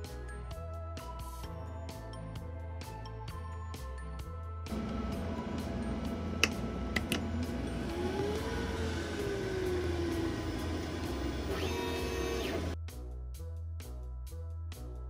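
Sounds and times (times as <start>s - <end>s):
background music: 0.0s - 15.0s
whine changing in pitch: 4.7s - 12.8s
sharp clicks: 6.4s - 7.3s.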